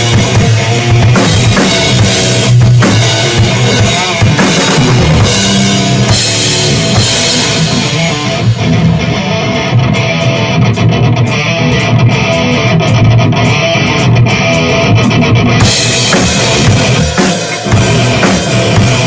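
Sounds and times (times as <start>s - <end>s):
drums: 0.0s - 19.0s
heavy metal electric guitar riff: 0.0s - 19.0s.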